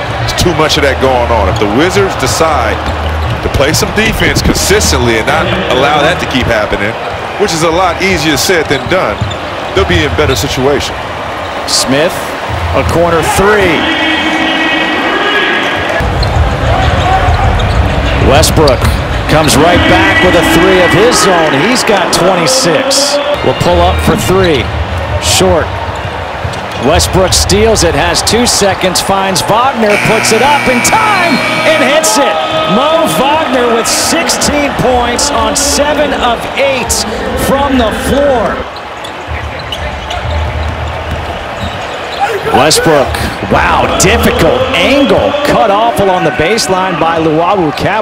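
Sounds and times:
music over arena speakers: 0.0s - 48.0s.

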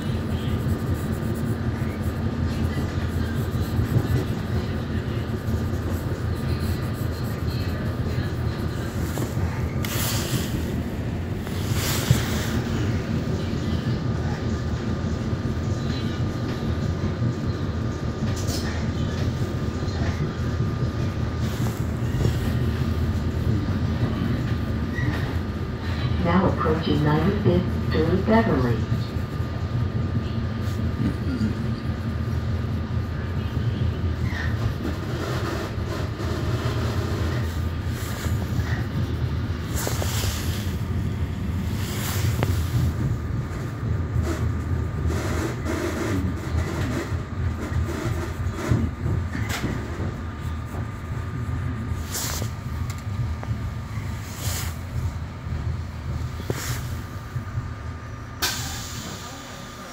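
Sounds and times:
train rumble inside car: 0.0s - 59.9s.

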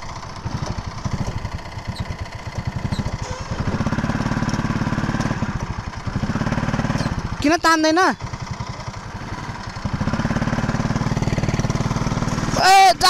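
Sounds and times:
go-kart engine running: 0.0s - 13.0s.

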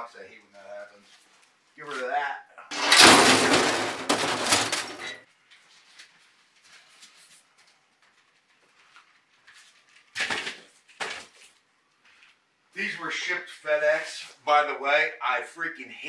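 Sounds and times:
handling noise: 2.7s - 5.2s.

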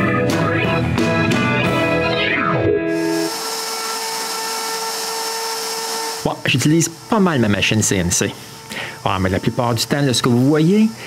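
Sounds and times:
router spindle high whine: 2.8s - 11.0s
bit cutting wood hiss: 2.9s - 11.0s.

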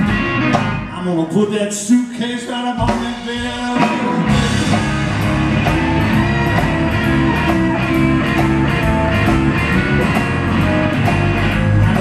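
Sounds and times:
electric guitar: 0.0s - 1.9s, 2.8s - 12.0s
drum beat: 2.8s - 12.0s.

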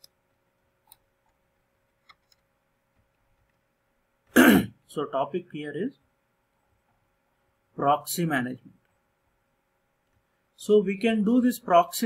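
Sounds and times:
man clearing his throat: 4.3s - 4.8s.

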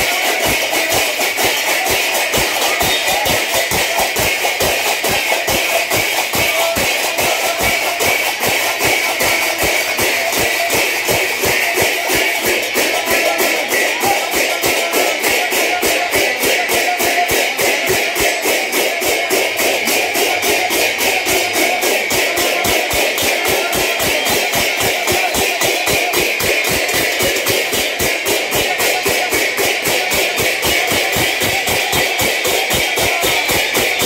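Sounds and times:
brass hand cymbals clashing: 0.0s - 34.0s.

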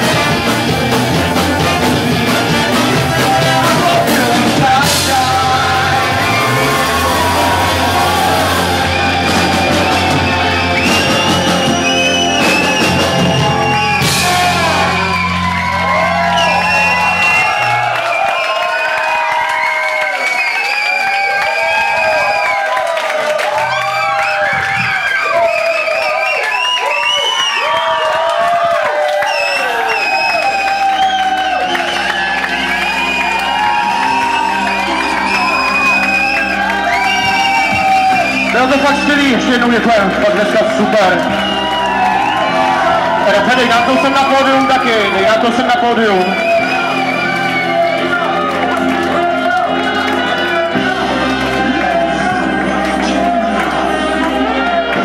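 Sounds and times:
saxophone: 0.0s - 18.6s
audience shouting and whooping: 0.0s - 55.0s
bass: 0.0s - 55.0s
drums: 0.0s - 55.0s.

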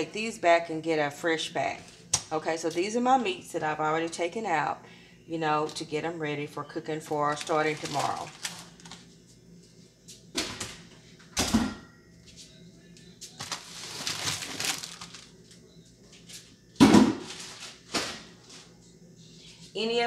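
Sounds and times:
plastic crinkling: 7.1s - 9.0s, 13.4s - 15.4s.

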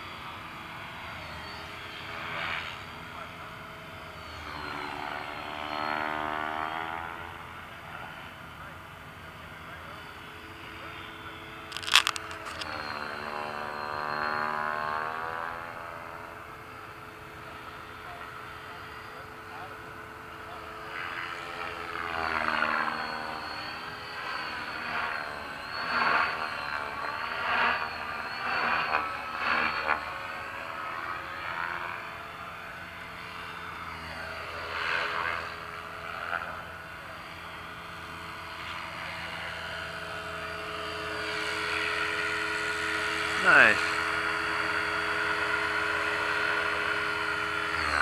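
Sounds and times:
model aircraft motors whining: 0.0s - 48.0s.

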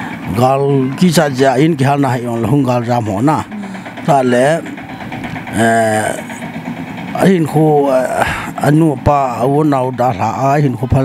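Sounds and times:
man's voice holding a syllable: 0.2s - 4.8s, 5.5s - 6.4s.

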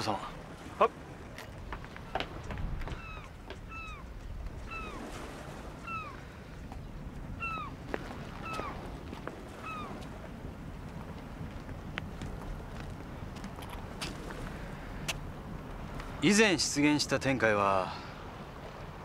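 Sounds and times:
animal calling: 2.8s - 5.1s, 5.8s - 6.2s, 7.4s - 8.8s, 9.6s - 10.0s.

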